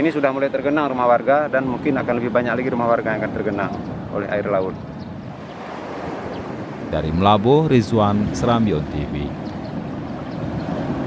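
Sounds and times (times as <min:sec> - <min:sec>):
wind on microphone: 0:01.8 - 0:11.0
surf breaking on beach: 0:05.2 - 0:11.0.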